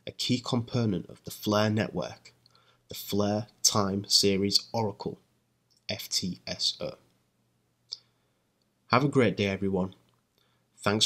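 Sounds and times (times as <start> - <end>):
man speaking: 0.0 - 7.1, 8.9 - 10.0, 10.8 - 11.0.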